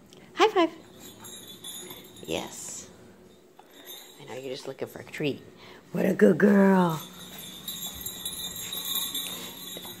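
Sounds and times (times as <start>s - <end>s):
dog collar bell jingling: 0.4s - 5.5s, 6.3s - 10.0s.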